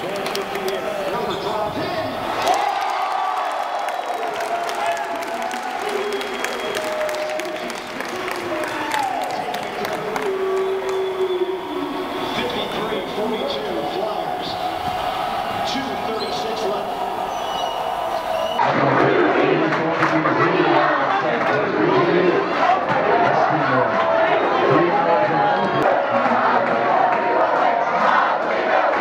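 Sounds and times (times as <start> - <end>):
crowd cheering: 0.0 - 29.0
students chattering and calling out: 5.3 - 19.6.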